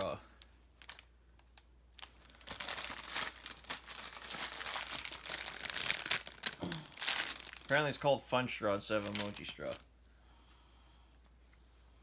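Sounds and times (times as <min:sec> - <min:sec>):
plastic packaging crinkling: 0:00.0 - 0:08.2, 0:08.8 - 0:09.9.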